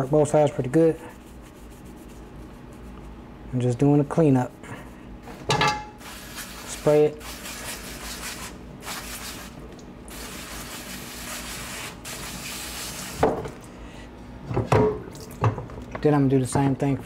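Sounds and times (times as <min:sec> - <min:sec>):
sprayer spraying water: 0:06.0 - 0:13.2.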